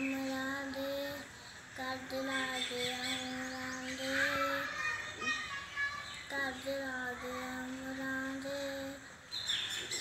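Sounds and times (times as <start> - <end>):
child singing a long note: 0.0 - 9.2
birds chirping: 0.0 - 10.0.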